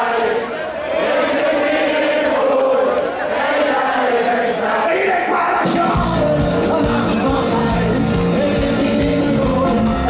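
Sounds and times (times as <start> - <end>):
crowd singing in chorus: 0.0 - 10.0
live band playing: 5.7 - 10.0.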